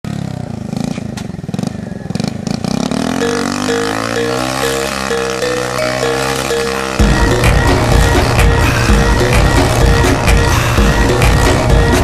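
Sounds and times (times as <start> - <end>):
motorcycle engine revving: 0.1 - 12.0
music: 3.1 - 12.0.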